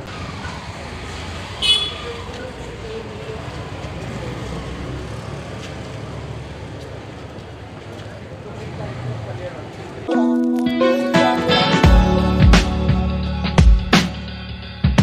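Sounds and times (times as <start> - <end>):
rumble of passing vehicles: 0.0 - 10.1
short high vehicle horn toot: 1.6 - 2.0.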